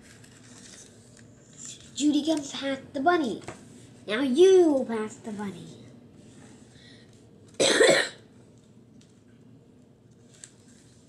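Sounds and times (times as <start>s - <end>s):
person coughing: 7.6s - 8.2s.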